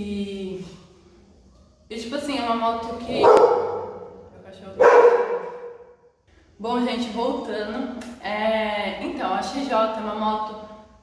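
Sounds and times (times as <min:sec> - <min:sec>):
dog barking in tiled room: 0:03.1 - 0:04.2, 0:04.8 - 0:06.0.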